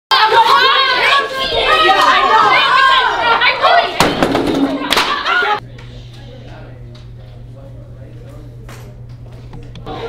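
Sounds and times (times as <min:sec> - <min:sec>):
children shouting and yelling: 0:00.1 - 0:05.6.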